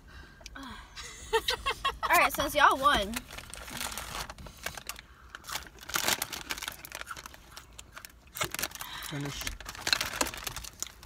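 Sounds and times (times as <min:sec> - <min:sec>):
chip bag crinkling: 0:03.1 - 0:11.0.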